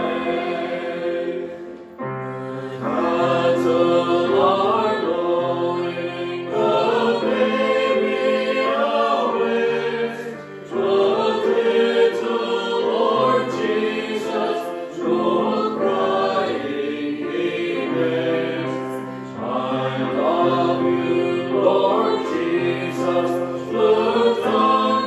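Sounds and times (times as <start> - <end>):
choir singing a hymn: 0.0 - 25.0.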